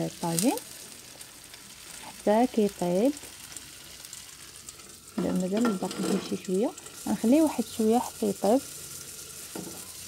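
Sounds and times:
eggs and tomato sizzling: 0.0s - 10.0s
faint crackles: 0.0s - 10.0s.

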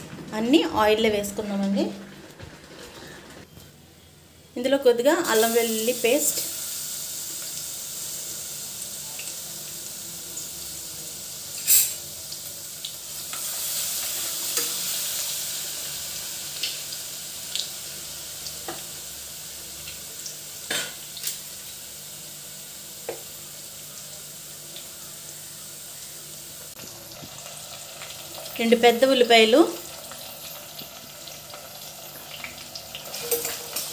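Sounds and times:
paste sizzling in hot oil: 5.2s - 33.9s.

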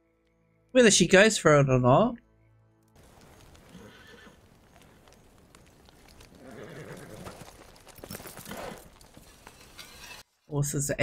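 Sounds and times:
horses stamping: 3.0s - 10.2s
horses whinnying: 3.1s - 9.2s.

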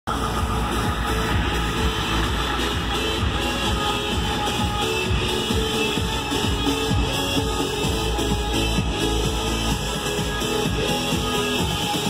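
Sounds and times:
electronic dance music: 0.1s - 12.0s.

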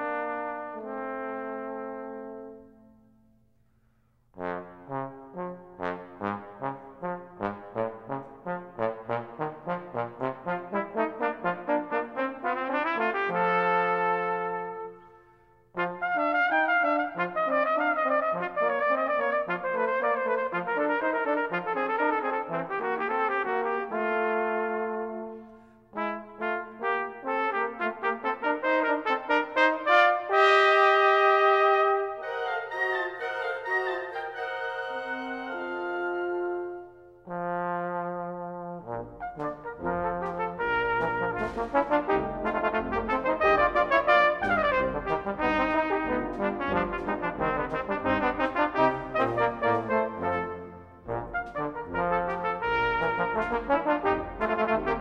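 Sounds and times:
brass band accompaniment: 0.0s - 2.8s, 4.4s - 15.1s, 15.7s - 55.0s
trombone playing: 0.0s - 2.9s, 4.4s - 15.1s, 15.7s - 55.0s
cornet playing: 0.0s - 3.2s, 4.4s - 55.0s.

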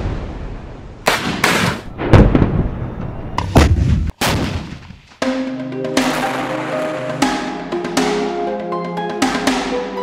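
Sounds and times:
rocket launcher firing: 1.0s - 3.0s, 3.6s - 5.0s.

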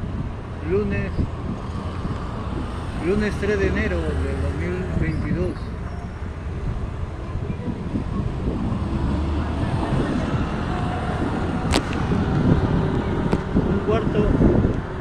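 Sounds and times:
cars passing: 0.0s - 15.0s
motorcycle passing: 8.2s - 15.0s.

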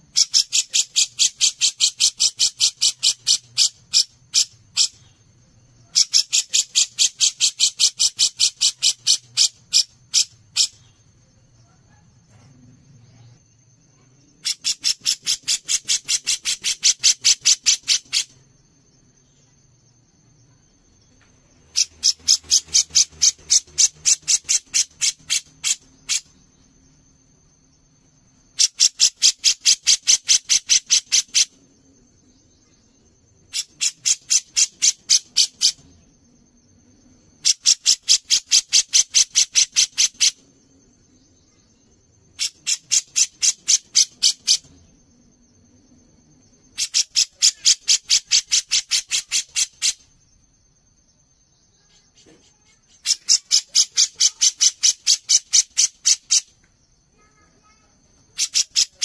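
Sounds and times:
bird harsh rattling chatter: 0.1s - 5.0s, 5.9s - 10.8s, 14.4s - 18.4s, 21.7s - 26.3s, 28.6s - 31.6s, 33.5s - 35.9s, 37.4s - 40.4s, 42.4s - 44.7s, 46.8s - 50.0s, 52.6s - 56.5s, 57.2s - 59.0s.

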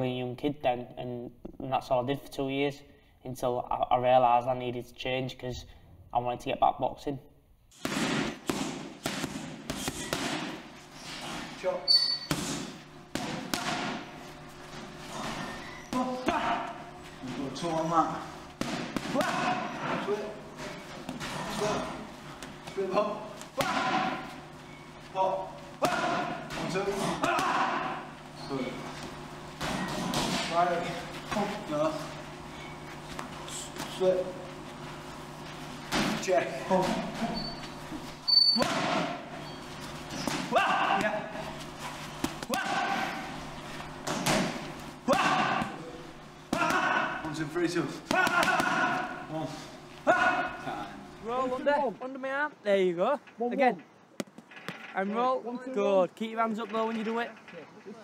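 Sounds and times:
gloves punching focus mitts: 7.7s - 11.5s, 12.3s - 14.1s, 18.6s - 19.8s, 42.1s - 43.4s, 48.0s - 49.2s
coach calling out: 25.1s - 28.8s, 40.5s - 41.4s, 42.5s - 43.3s, 45.0s - 46.0s, 46.6s - 53.8s.

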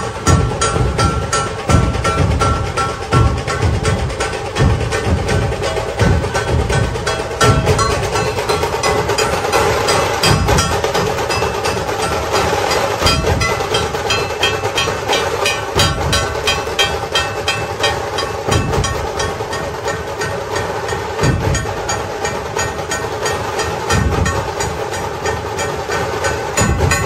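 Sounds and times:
heavy drum beats: 0.0s - 27.0s
rapid sharp drum strikes: 0.0s - 27.0s.

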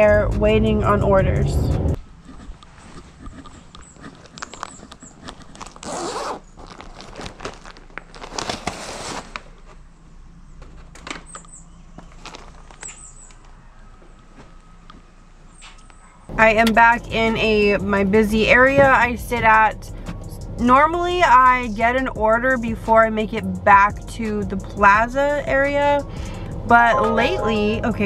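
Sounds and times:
bag closure rasp: 2.4s - 9.4s
bag rustling and clicks: 2.7s - 9.7s, 12.0s - 13.4s.

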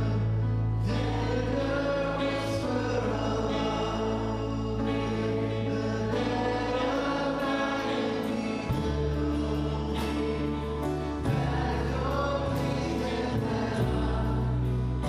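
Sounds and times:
held bass notes: 0.0s - 15.0s
piano: 0.0s - 15.0s
voices singing together: 0.0s - 15.0s
drums: 11.2s - 14.4s.

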